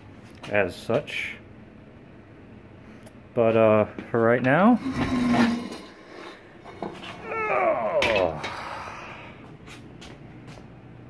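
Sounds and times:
man's wordless vocal sounds: 0:07.2 - 0:09.4.

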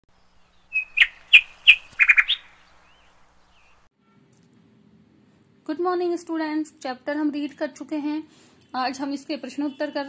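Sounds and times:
bird chirping: 0:00.1 - 0:03.9.

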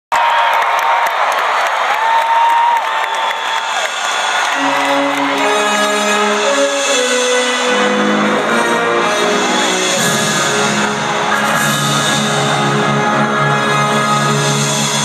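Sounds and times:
crowd cheering and whistling: 0:00.1 - 0:15.0.

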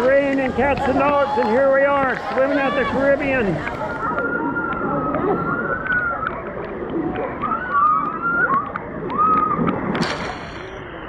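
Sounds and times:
pool water splashing: 0:00.0 - 0:11.0.

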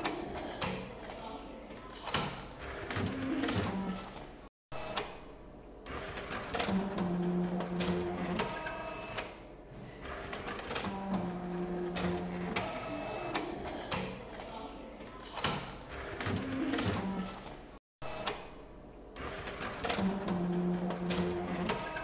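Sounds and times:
printer mechanism clicking and clattering: 0:01.8 - 0:04.3, 0:10.0 - 0:17.6, 0:19.2 - 0:22.0
printer motor hum: 0:05.8 - 0:14.4, 0:19.2 - 0:22.0.

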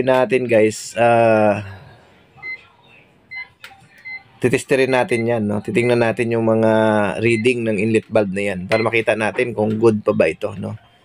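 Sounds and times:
high electronic beeps: 0:07.0 - 0:09.1.

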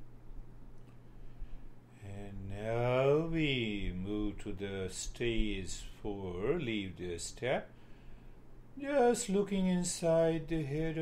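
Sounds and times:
man chanting mantra syllable: 0:02.0 - 0:07.7, 0:08.8 - 0:11.0.

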